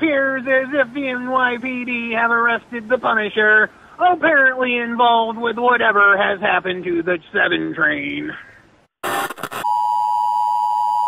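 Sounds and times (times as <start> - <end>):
tv static hiss: 9.0 - 9.6.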